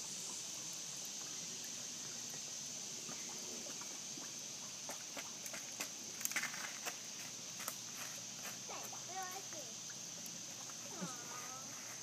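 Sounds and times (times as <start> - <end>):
footsteps on stones and leaves: 5.5 - 9.4
child's voice: 8.7 - 9.7.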